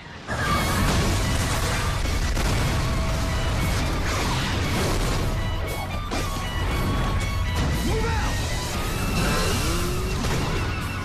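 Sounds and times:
loud dense trailer music: 0.3 - 11.0.

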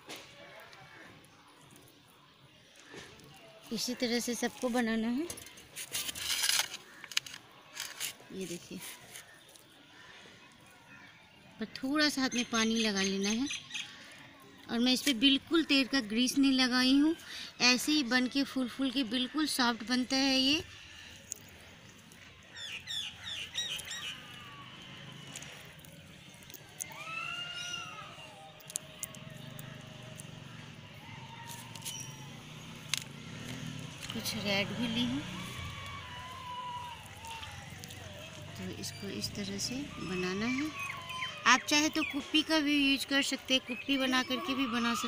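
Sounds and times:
brief rustle: 5.3 - 9.3
birds chirping and calling: 10.9 - 45.0.

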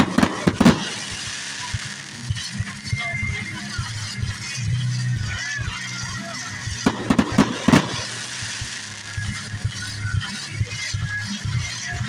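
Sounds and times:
fireworks bangs: 0.0 - 3.2, 6.6 - 10.5
fireworks crackling and popping: 0.0 - 12.0.

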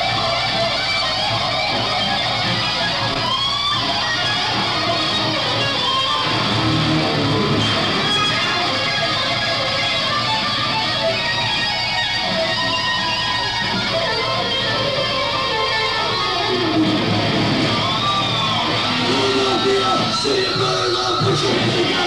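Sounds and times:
electric guitar solo: 0.0 - 22.0.

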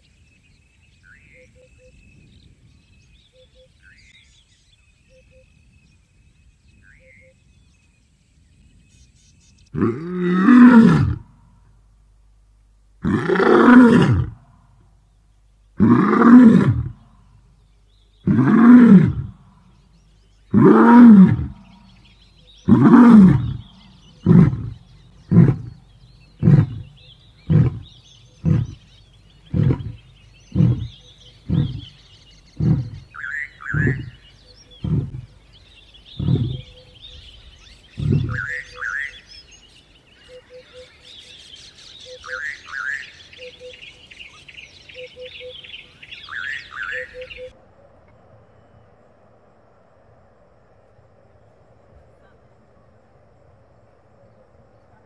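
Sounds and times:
birds chirping: 0.0 - 55.0
large animal roaring: 9.8 - 11.2, 13.0 - 14.4, 15.8 - 17.0, 18.2 - 19.4, 20.5 - 21.8, 22.6 - 35.4, 36.1 - 36.8, 37.9 - 38.7
animal grunts: 26.4 - 35.4, 36.1 - 36.8, 37.9 - 38.7.

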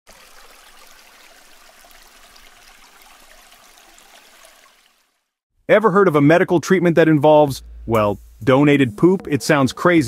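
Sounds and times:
faint trickling fizzing noise: 0.1 - 5.4.

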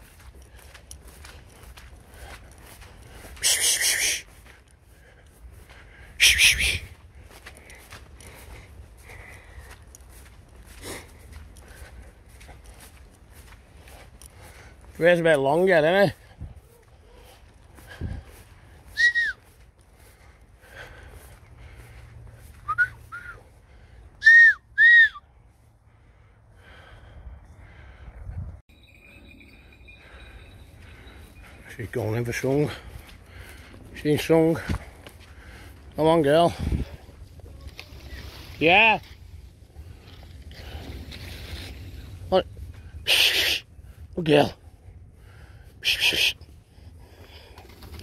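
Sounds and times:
person whistling rising and falling: 19.0 - 19.4, 22.6 - 23.4, 24.2 - 25.2.

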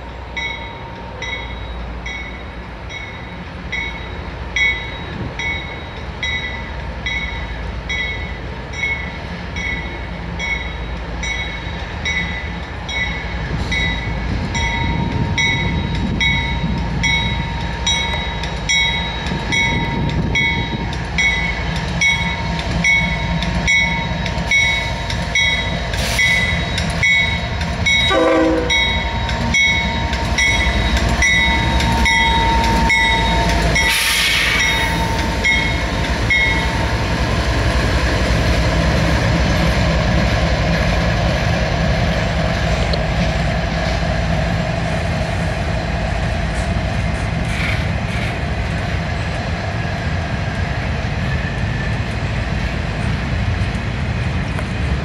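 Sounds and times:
diesel locomotive passing: 0.0 - 55.0
air hiss: 25.9 - 26.6, 33.8 - 35.0
train horn note: 28.0 - 29.2.

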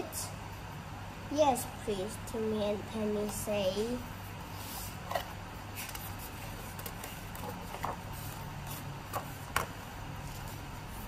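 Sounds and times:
paper page rustling: 4.6 - 9.5.

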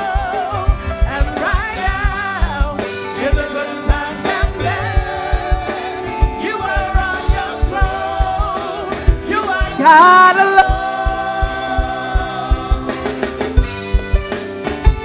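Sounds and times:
choir singing worship song: 0.0 - 13.8
live band: 0.0 - 15.0
kick drum beat: 0.1 - 10.0, 10.6 - 12.9, 13.6 - 15.0.

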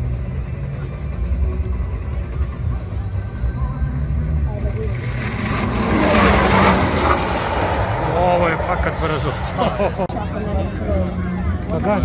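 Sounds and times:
sports car passing at speed: 4.0 - 10.1
spectators' voices: 4.5 - 12.0.

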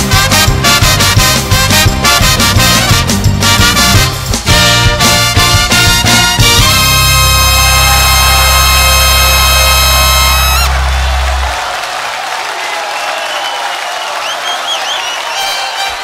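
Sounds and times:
crowd applauding and cheering: 0.0 - 16.0
crowd whooping: 6.8 - 16.0.

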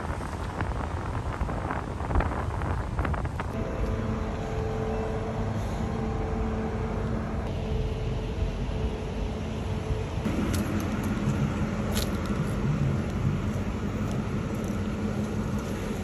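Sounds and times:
street traffic rumble: 0.0 - 16.0
vehicle engine humming: 1.4 - 16.0.

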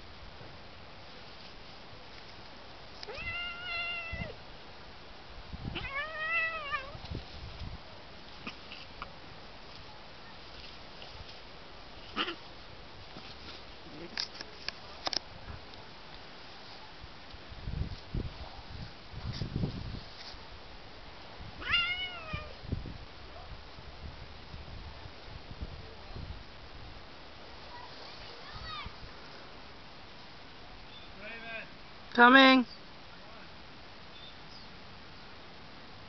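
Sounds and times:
cat yowling: 3.1 - 4.4, 5.7 - 7.0, 21.6 - 22.5.

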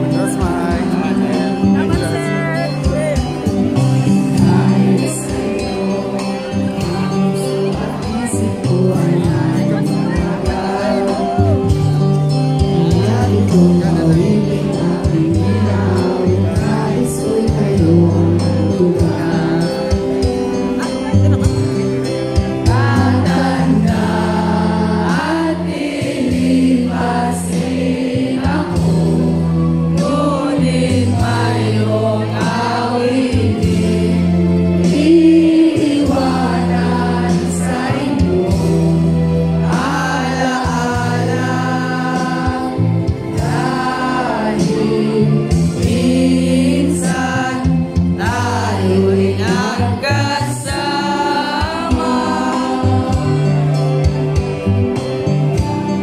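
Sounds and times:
group singing in unison: 0.0 - 2.2, 3.7 - 21.4, 22.4 - 56.0
backing music with bass notes: 0.0 - 56.0.

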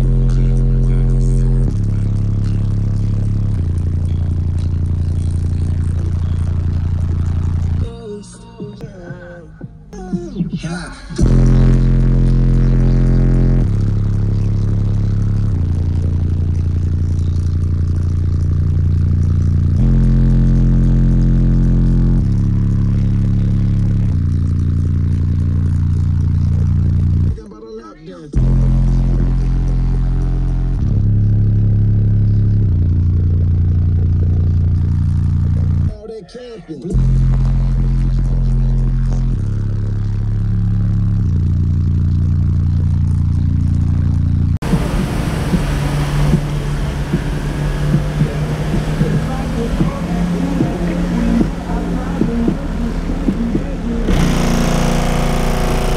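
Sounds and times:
loud bass-heavy music: 0.0 - 55.9.

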